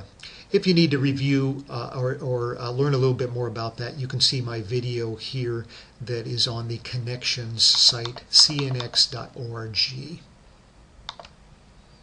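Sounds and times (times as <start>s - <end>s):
quick clicks: 7.7s - 9.1s, 11.1s - 11.4s.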